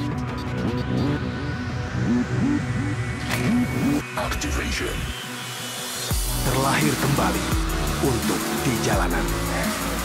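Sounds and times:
motorcycle engine revving: 6.2s - 10.0s.

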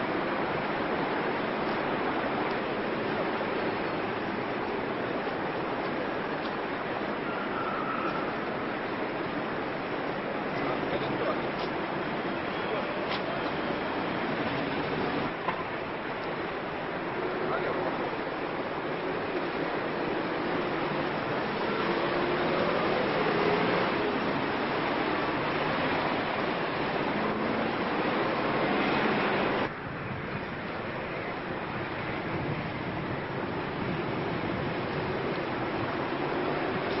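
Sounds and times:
car engines and tyres: 0.0s - 37.0s
vehicles moving off: 0.0s - 37.0s.

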